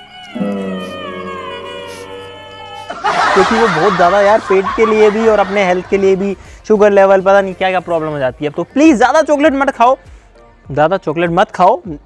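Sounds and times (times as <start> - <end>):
meow-like falling comic note: 0.4 - 2.7.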